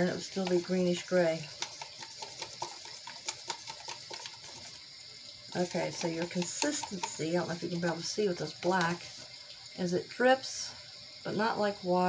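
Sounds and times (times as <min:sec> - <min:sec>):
stick stirring paint in plastic cup: 0:00.0 - 0:04.8, 0:05.5 - 0:09.3
rain-sound machine hiss: 0:00.0 - 0:12.0.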